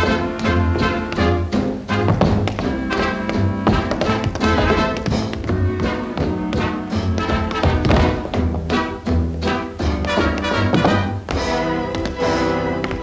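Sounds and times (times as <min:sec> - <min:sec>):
tap shoes on hard floor: 0:02.0 - 0:09.2, 0:09.8 - 0:13.0.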